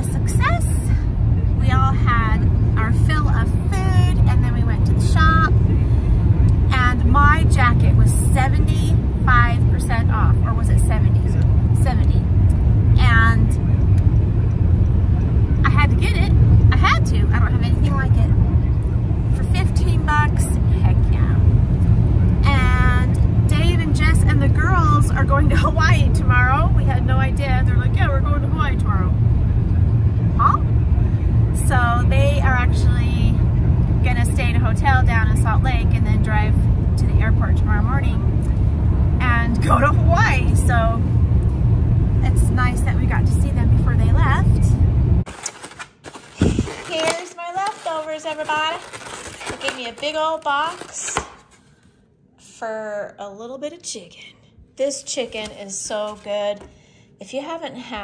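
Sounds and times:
woman talking: 0.0s - 1.0s, 1.6s - 5.5s, 6.6s - 12.3s, 13.0s - 13.6s, 15.6s - 18.4s, 19.3s - 21.4s, 22.4s - 29.2s, 30.4s - 30.7s, 31.5s - 33.4s, 34.0s - 38.4s, 39.2s - 41.1s, 42.2s - 44.8s, 46.4s - 51.3s, 52.4s - 58.0s
car cabin road noise: 0.0s - 45.3s.

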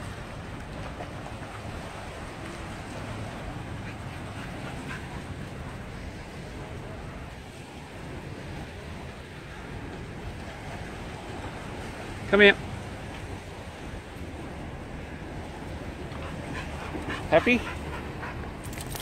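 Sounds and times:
small waves washing on shore: 0.0s - 19.0s.

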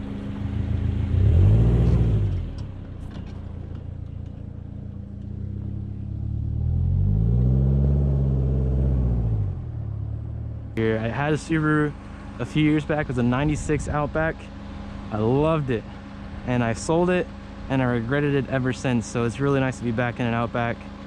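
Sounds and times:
car engine revving: 0.0s - 14.1s.

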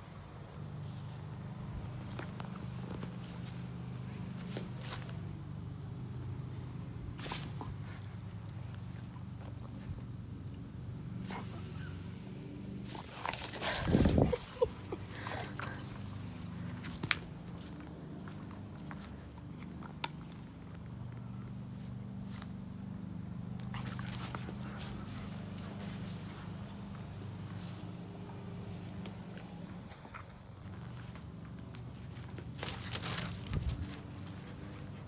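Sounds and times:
steady low hum: 0.0s - 35.0s
rustling: 12.8s - 17.8s, 31.8s - 35.0s.

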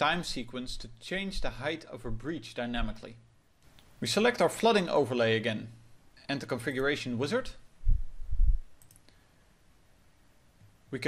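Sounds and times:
computer mouse clicks: 8.8s - 9.2s.

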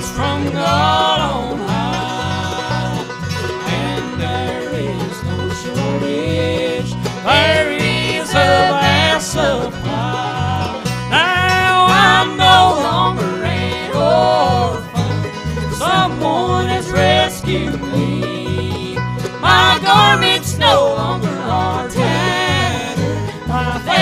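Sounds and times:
bluegrass band playing: 0.0s - 24.0s
voices singing in harmony: 0.0s - 24.0s.

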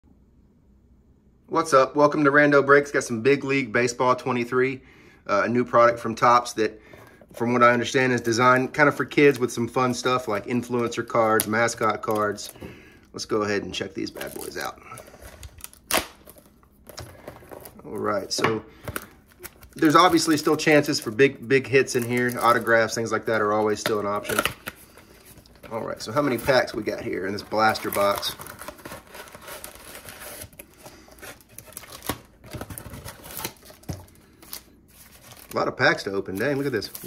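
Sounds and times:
cellophane crinkling: 6.9s - 37.0s.

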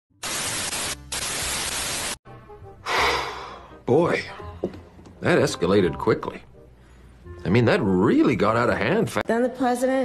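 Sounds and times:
tv static hiss: 0.2s - 2.2s.

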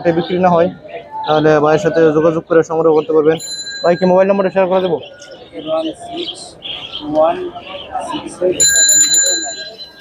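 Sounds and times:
high bird chirps: 2.9s - 10.0s.

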